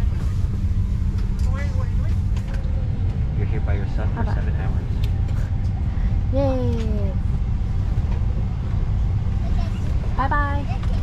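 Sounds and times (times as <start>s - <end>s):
airliner cabin rumble: 0.0s - 11.0s.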